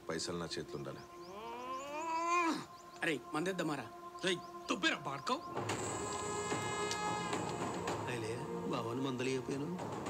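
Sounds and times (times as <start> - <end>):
long drawn-out cry: 1.3 - 2.7.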